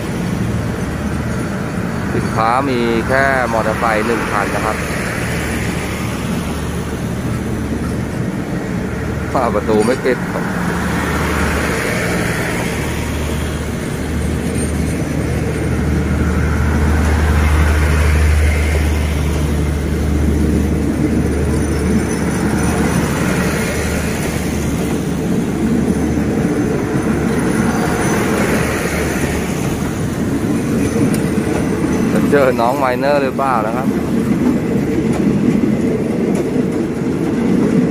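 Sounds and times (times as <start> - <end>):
train wheels rumbling on rails: 0.0 - 37.9.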